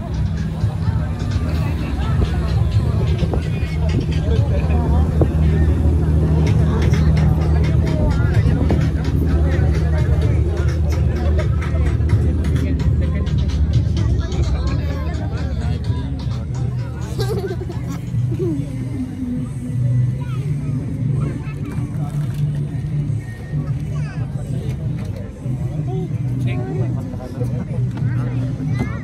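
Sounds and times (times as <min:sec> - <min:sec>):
boat engine drone: 0:00.0 - 0:21.4
music: 0:00.0 - 0:29.0
people's voices: 0:00.0 - 0:29.0.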